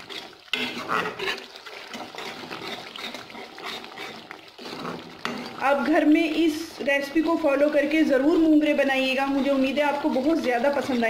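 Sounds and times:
metal spoon scraping pan: 0.0s - 6.0s, 8.7s - 11.0s
masala sizzling in oil: 0.0s - 11.0s.

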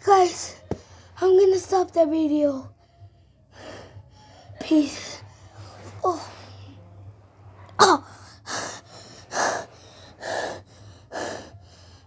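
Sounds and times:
boy gasping for breath: 7.8s - 12.0s.

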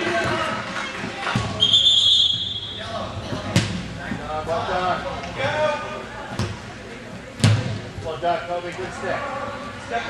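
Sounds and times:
referee's whistle: 1.6s - 2.8s.

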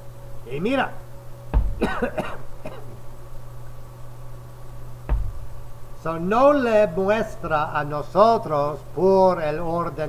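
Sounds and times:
man coughing: 1.8s - 3.0s.

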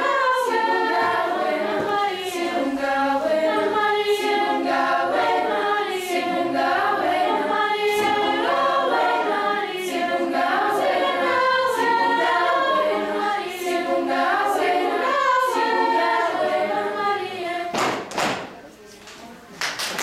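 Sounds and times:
children's choir singing: 0.0s - 18.4s.

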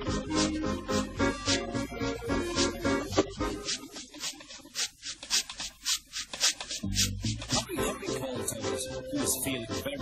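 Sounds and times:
steam locomotive puffing: 0.0s - 7.8s.

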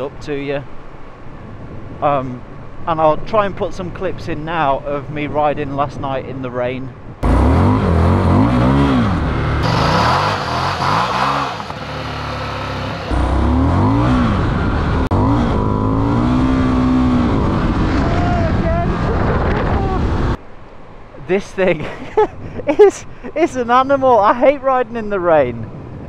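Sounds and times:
motorcycle engine revving: 7.2s - 20.4s.

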